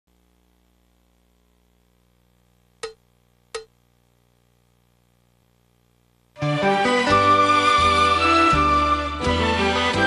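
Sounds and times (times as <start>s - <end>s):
faint steady hum: 0.1s - 7.2s.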